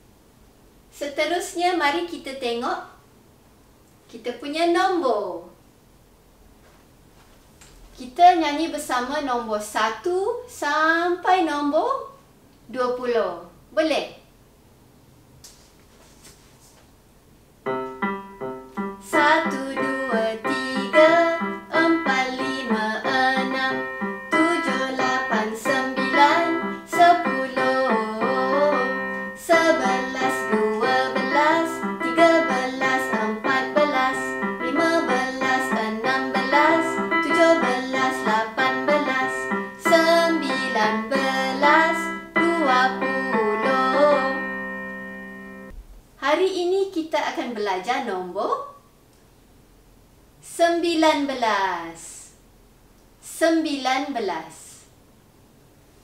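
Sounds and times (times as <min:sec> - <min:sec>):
children's counting song: 0:17.7 - 0:45.7
electric keyboard backing: 0:17.7 - 0:45.7.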